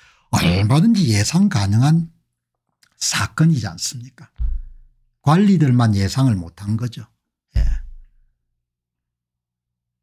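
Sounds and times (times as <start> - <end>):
man sighing: 7.6 - 8.1.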